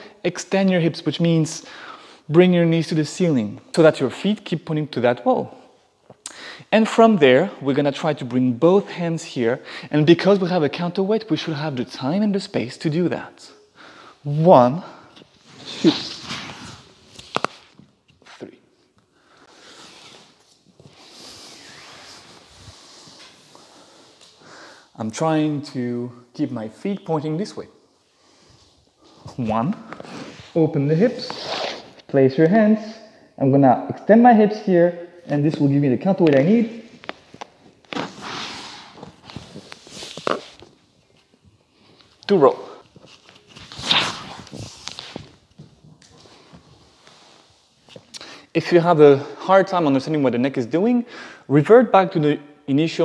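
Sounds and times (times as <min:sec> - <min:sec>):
body sliding on wooden floor: 0:19.6 - 0:24.4.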